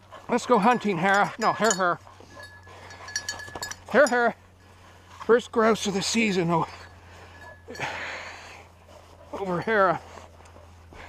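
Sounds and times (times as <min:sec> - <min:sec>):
small bell jingling: 0:00.6 - 0:04.4, 0:06.0 - 0:08.1.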